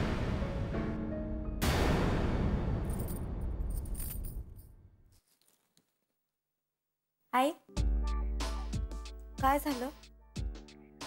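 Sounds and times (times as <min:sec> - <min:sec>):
cymbal crash with metallic jingle: 0:01.6 - 0:04.4.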